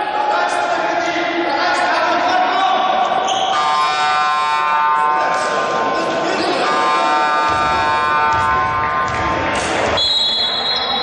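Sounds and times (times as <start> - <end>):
scoreboard buzzer: 6.5 - 8.8.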